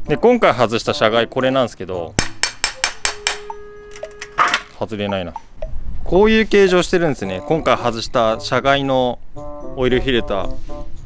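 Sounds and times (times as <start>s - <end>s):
metallic ring: 3.2s - 4.8s
metal tools clinking: 3.9s - 4.8s.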